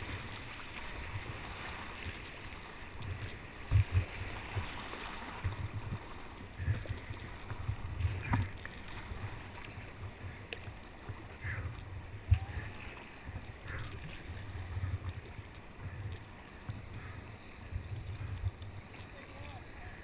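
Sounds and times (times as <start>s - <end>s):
whitewater rushing and splashing: 0.0s - 20.0s
wind buffeting microphone: 3.0s - 10.5s, 11.1s - 19.0s.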